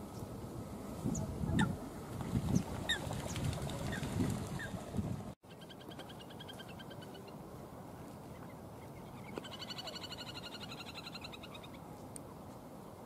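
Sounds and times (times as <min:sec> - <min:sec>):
low bird calls: 0:08.3 - 0:11.8.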